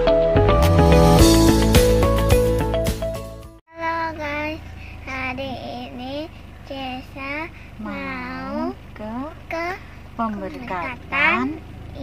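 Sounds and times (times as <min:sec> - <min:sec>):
girl calling out sing-song greeting: 0:03.7 - 0:04.6.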